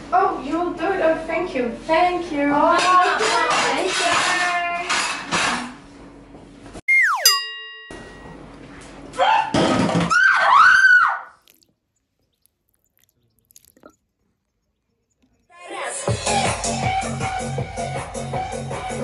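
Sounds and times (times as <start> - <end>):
cartoon tone sliding down: 6.9 - 7.5
woman shrieking: 10.1 - 11.3.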